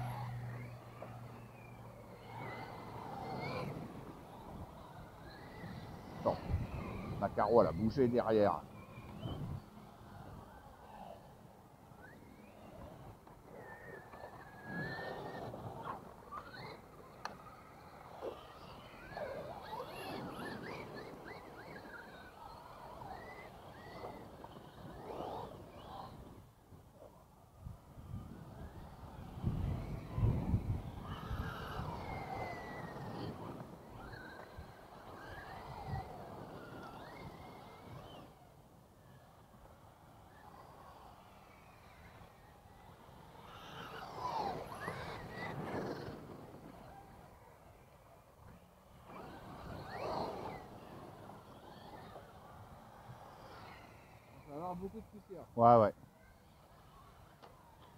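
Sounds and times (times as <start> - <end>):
electric motors whining: 0.0 - 57.9.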